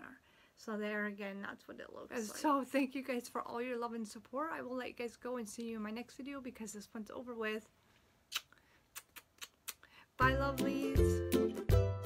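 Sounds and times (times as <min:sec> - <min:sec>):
lip-smacking kiss clicks: 0:08.3 - 0:09.9.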